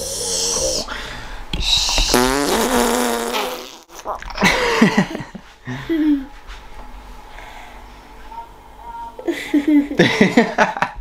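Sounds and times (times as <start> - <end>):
fart-like buzzing noise: 1.6 - 4.5.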